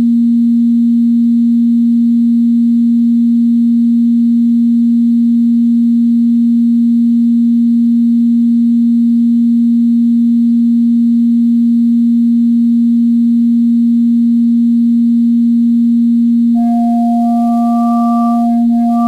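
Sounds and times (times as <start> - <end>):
steady sine tone: 0.0 - 19.0.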